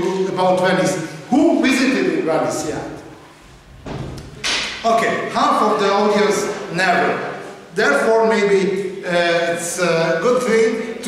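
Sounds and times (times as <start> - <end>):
man speaking: 0.0 - 3.1, 4.7 - 11.0
dull thump: 3.7 - 4.2.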